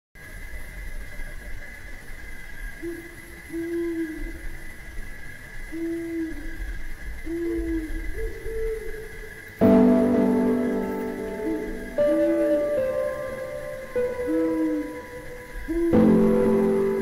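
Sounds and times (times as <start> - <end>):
dove cooing: 2.8 - 4.5, 5.7 - 17.0
steady high drone: 9.6 - 17.0.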